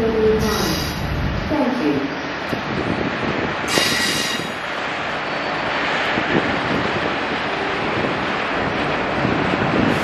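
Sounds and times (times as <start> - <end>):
train wheels rumbling on rails: 0.0 - 10.0
train wheels squealing: 3.7 - 4.6.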